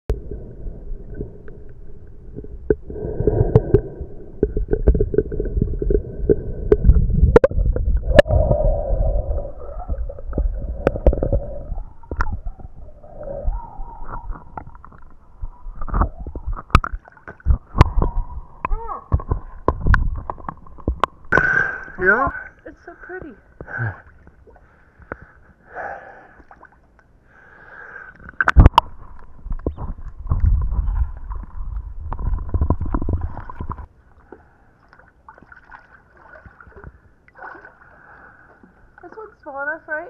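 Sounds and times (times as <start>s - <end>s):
water sloshing and gurgling: 0.1s - 39.8s.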